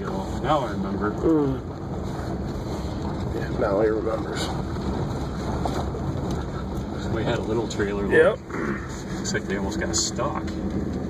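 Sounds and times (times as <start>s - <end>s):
vehicle engine and tyres rumbling: 0.0s - 11.0s.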